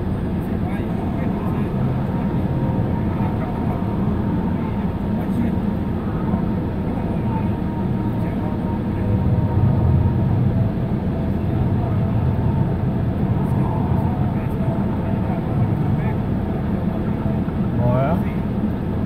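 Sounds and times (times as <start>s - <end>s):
car cabin low rumble: 0.0s - 19.0s.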